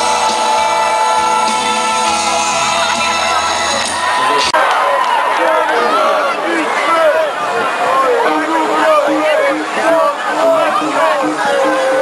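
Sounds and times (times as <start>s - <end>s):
drums: 0.0s - 4.6s.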